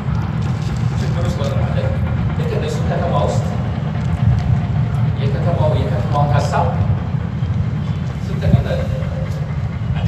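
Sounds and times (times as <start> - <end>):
heavy low rumble: 0.0 - 10.0.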